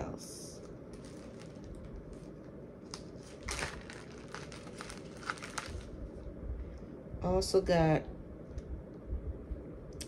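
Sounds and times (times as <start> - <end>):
steady low hum: 0.0 - 10.0
plastic packaging crinkling: 0.6 - 6.2.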